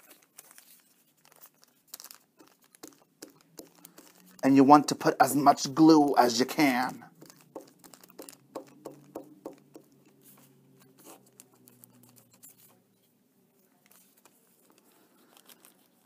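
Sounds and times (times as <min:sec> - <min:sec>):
glue stick rubbing on paper: 0:00.0 - 0:05.1, 0:06.6 - 0:12.8
paper crinkling: 0:00.0 - 0:16.0.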